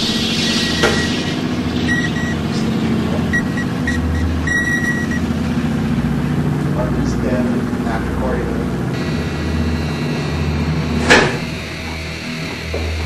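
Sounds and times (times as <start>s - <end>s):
low droning hum: 0.0s - 13.0s
short high beeps: 1.9s - 2.4s, 3.3s - 5.3s.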